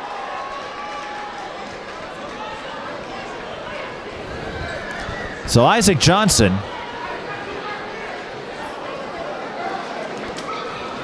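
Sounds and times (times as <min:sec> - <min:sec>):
murmur of crowd voices: 0:05.5 - 0:06.7.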